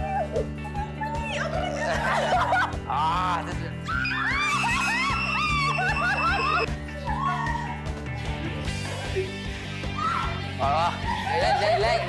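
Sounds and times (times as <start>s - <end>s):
background music: 0.0s - 12.0s
woman crying squeals: 3.9s - 6.7s.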